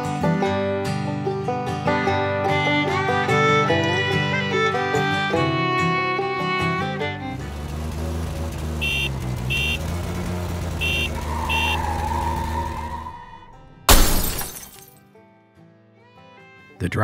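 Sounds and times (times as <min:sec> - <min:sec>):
old car engine running: 0:06.6 - 0:13.2
wavering tyre squeal: 0:06.6 - 0:13.8
car horn honks: 0:08.5 - 0:13.0
loud crash with shattering glass: 0:13.9 - 0:15.0.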